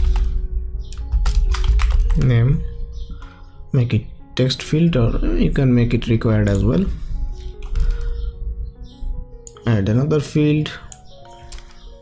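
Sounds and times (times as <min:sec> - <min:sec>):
background music: 0:00.0 - 0:12.0
computer keyboard typing: 0:00.9 - 0:02.5, 0:07.4 - 0:08.2, 0:10.9 - 0:12.0.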